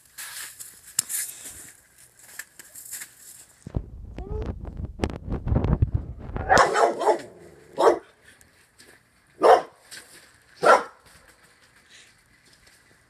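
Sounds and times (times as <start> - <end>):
low rumbling noise: 3.7 - 7.8
dog barking: 6.4 - 8.1, 9.4 - 9.8, 10.6 - 11.0.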